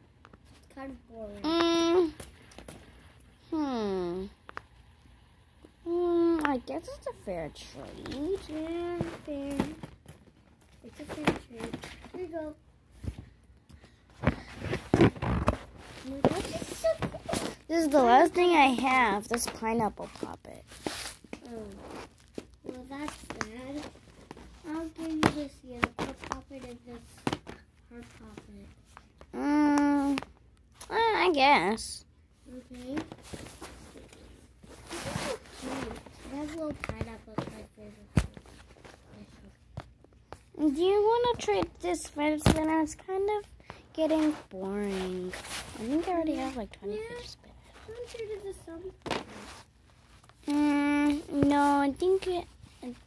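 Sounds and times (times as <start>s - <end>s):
child's voice: 0.7s - 2.2s, 3.4s - 4.4s, 5.8s - 9.9s, 10.8s - 12.6s, 16.0s - 20.7s, 21.4s - 22.0s, 22.6s - 24.0s, 24.6s - 27.3s, 27.9s - 33.1s, 34.9s - 38.4s, 40.5s - 49.6s, 50.4s - 53.0s
fidget toy rustling on paper: 14.6s - 27.3s, 32.4s - 39.6s, 40.7s - 53.0s.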